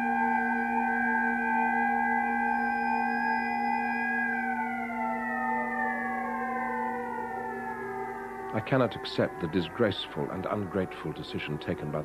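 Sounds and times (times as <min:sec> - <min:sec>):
higher tones falling in pitch: 0:00.0 - 0:12.0
steady drone of held tones: 0:00.0 - 0:12.0.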